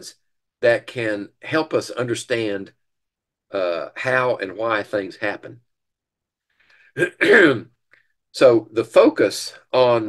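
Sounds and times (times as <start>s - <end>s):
man clearing his throat: 7.0s - 7.7s.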